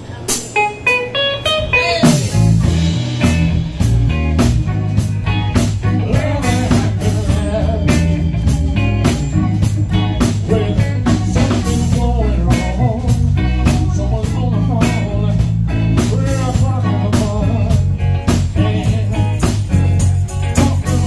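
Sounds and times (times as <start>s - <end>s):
live band playing: 0.0s - 21.0s
strong bass line: 1.6s - 21.0s.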